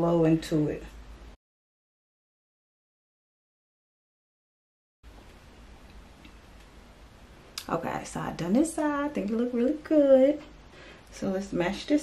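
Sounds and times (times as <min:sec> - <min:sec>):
low steady hiss and hum: 0:00.0 - 0:01.4, 0:05.1 - 0:12.0.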